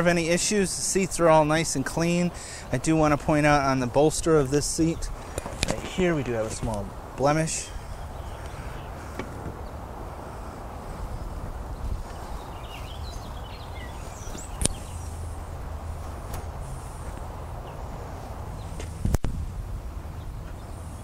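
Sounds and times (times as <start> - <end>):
sharp clicks: 14.6 - 14.8.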